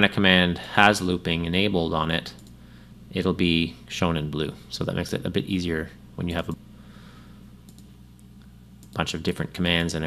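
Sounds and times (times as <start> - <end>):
steady low hum: 0.0 - 10.0
computer mouse clicks: 2.3 - 2.6, 7.7 - 9.0.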